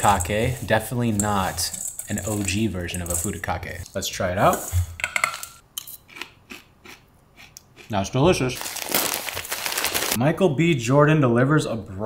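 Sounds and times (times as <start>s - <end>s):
spoon scraping metal bowl: 0.0s - 3.6s.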